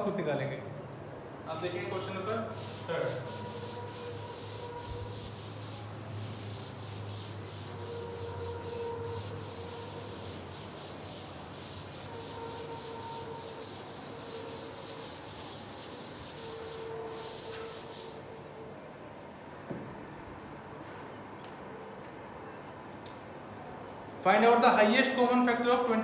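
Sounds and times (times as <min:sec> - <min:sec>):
duster wiping chalkboard: 0:02.5 - 0:18.3.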